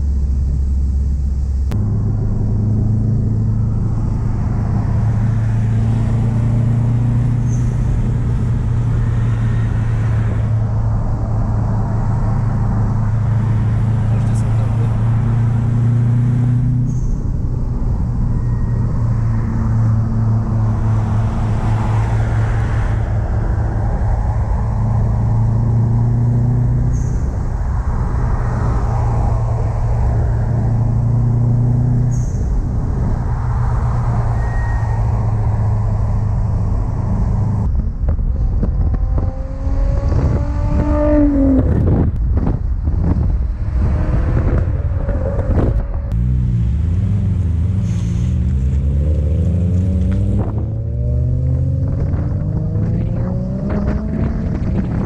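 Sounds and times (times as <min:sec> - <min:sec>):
car engines droning: 0:00.0 - 0:55.0
engine revving: 0:01.7 - 0:37.8, 0:38.4 - 0:55.0.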